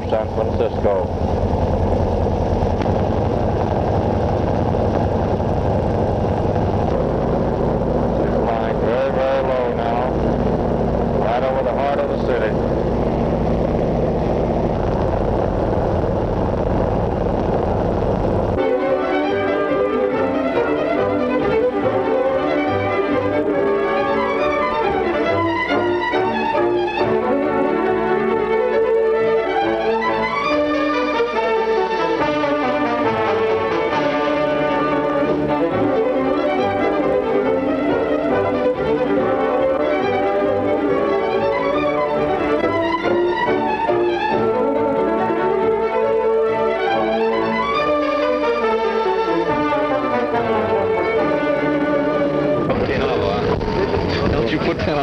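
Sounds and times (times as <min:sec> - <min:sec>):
engine and propeller drone: 0:00.0 - 0:55.0
orchestral music with violins: 0:18.6 - 0:54.8.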